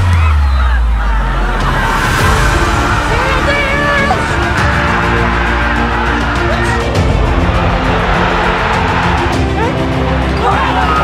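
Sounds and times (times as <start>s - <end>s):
soundtrack music: 0.0s - 11.0s.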